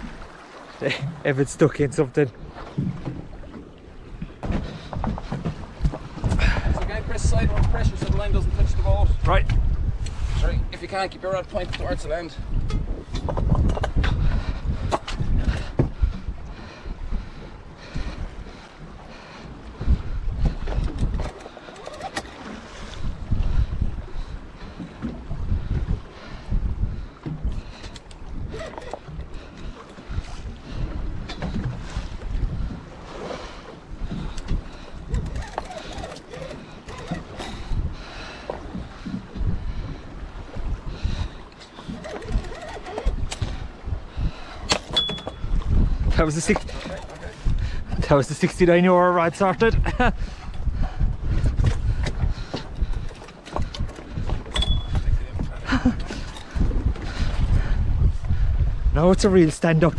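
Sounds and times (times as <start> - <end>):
choppy sea washing against boat: 0.0 - 59.9
wind buffeting microphone: 0.0 - 59.9.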